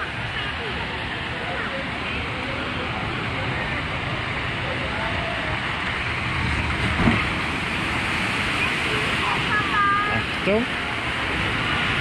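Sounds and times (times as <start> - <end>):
faint voices: 0.0 - 6.2, 8.2 - 11.5
water rushing through channel: 0.0 - 12.0
thump: 6.9 - 7.3.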